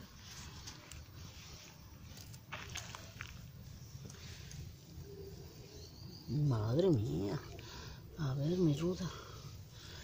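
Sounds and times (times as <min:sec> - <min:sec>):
rustling of foliage: 0:00.0 - 0:10.0.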